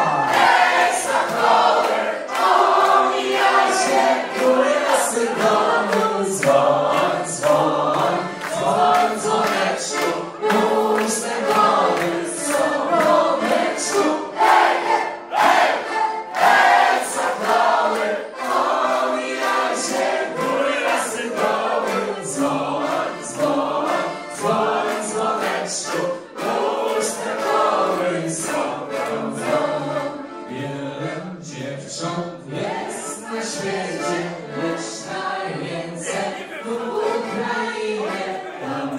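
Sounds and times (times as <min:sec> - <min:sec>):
crowd singing together: 0:00.0 - 0:38.9.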